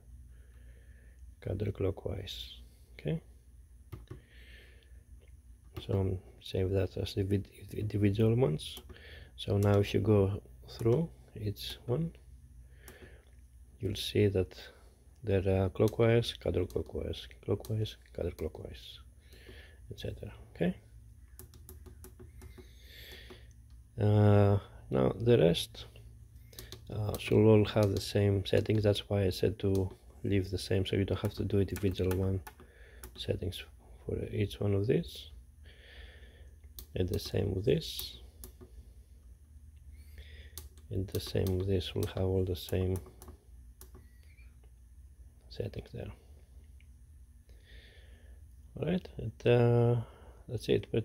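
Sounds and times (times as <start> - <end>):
low steady hum: 0.0 - 51.0
push buttons clicking: 40.5 - 44.4.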